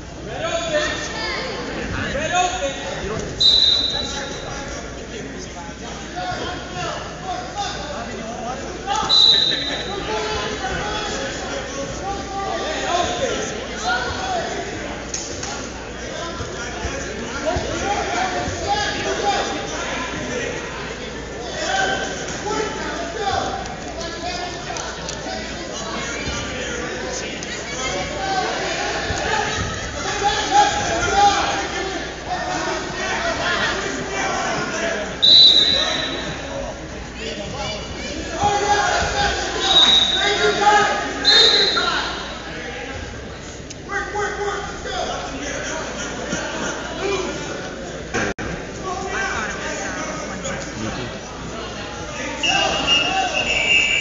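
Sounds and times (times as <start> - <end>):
people shouting in a hall: 27.7 - 36.6, 37.6 - 42.9, 52.1 - 54.0.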